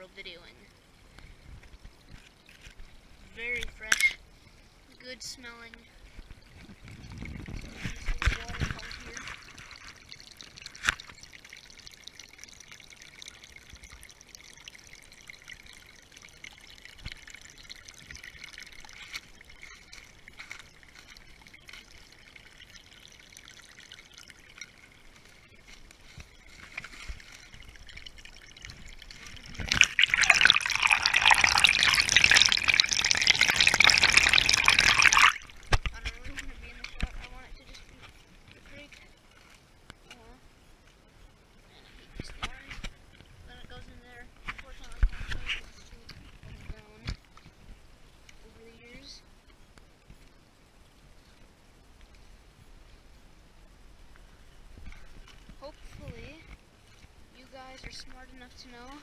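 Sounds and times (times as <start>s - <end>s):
creek trickling faintly: 0.0s - 59.0s.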